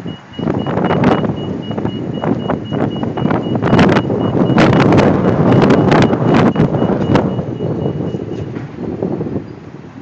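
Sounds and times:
rapid high-pitched beeping: 0.0 - 8.3
street traffic: 0.0 - 10.0
wind buffeting microphone: 0.0 - 10.0.

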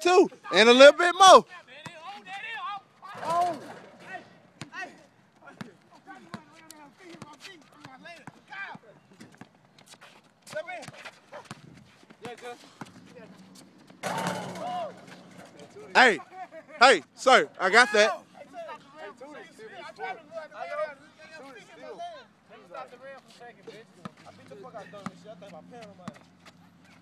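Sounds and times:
players calling out: 12.4 - 22.4
basketball bouncing on concrete: 13.8 - 15.6.

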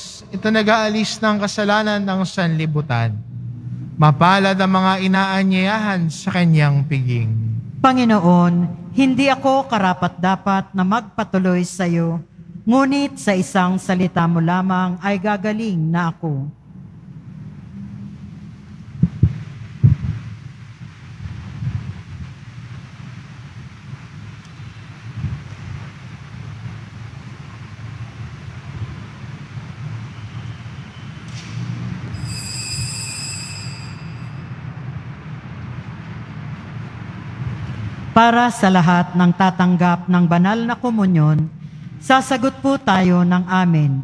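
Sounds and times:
low church room rumble: 0.0 - 32.2, 34.5 - 44.0
high-pitched ringing: 32.1 - 34.8.

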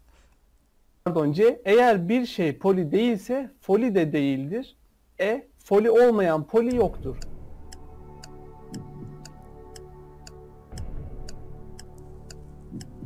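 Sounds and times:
clock ticking: 6.6 - 13.0
low sustained music: 6.7 - 13.0.

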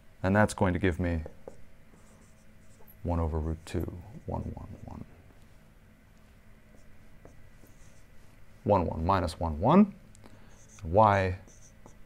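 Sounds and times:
marker writing on whiteboard: 1.2 - 2.9, 3.5 - 5.0, 6.7 - 8.1, 10.5 - 12.0.

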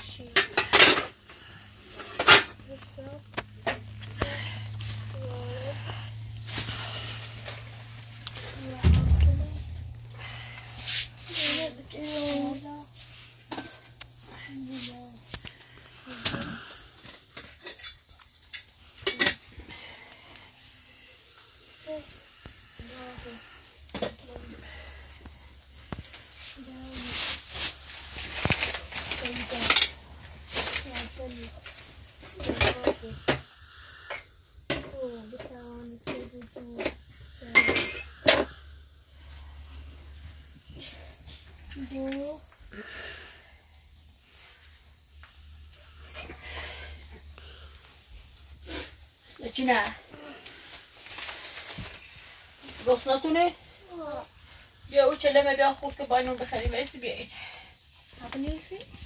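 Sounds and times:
metal dishes and pots clinking: 0.3 - 1.2, 37.5 - 38.5.

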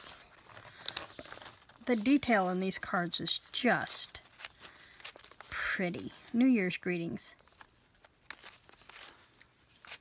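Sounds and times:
paper cards rustling in a box: 0.0 - 10.0.

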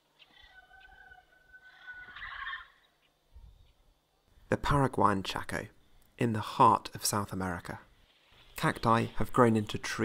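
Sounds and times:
parrot squawk: 0.3 - 2.9.

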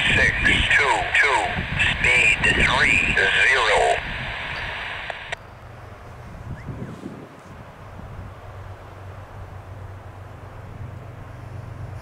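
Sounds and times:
radio hiss: 0.0 - 5.4
radio voice transmission: 0.0 - 5.4
low distant rumble: 0.0 - 6.9
faint outdoor wind: 0.0 - 12.0.

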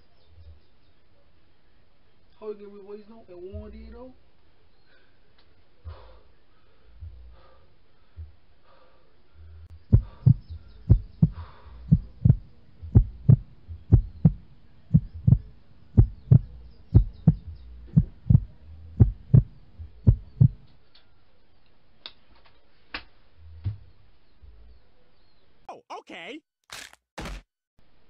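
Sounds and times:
heartbeat thumps: 5.9 - 6.2, 7.0 - 7.5, 8.2 - 8.4, 9.5 - 20.7.

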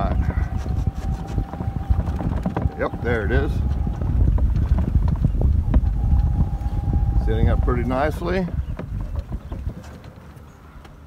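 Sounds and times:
cart knocks and rattles: 0.0 - 10.6
golf cart rumble: 0.0 - 11.0.

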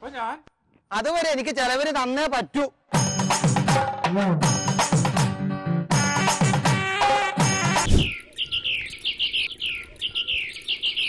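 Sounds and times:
bird chirping: 7.8 - 11.0.

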